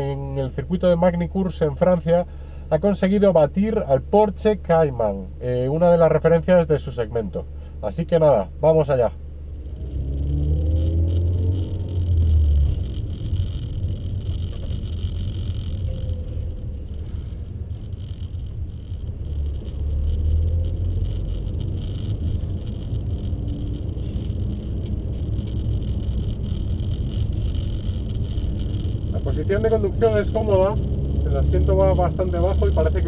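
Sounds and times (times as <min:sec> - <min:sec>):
road and tyre noise: 0:00.0 - 0:33.0
car engine accelerating: 0:09.4 - 0:33.0.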